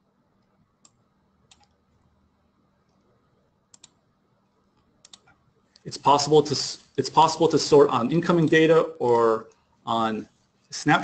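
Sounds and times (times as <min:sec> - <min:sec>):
computer mouse clicking: 0:00.4 - 0:01.8, 0:03.7 - 0:04.0, 0:04.8 - 0:05.9.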